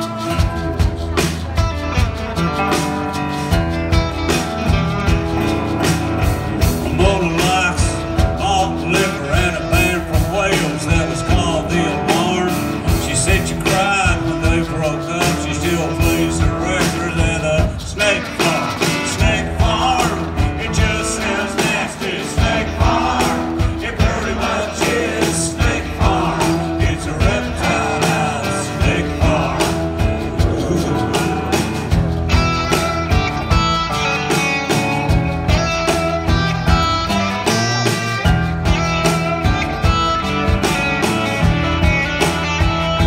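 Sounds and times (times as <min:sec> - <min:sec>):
acoustic guitar: 0:00.0 - 0:43.0
drum kit beat: 0:00.0 - 0:43.0
electric guitar: 0:00.0 - 0:43.0.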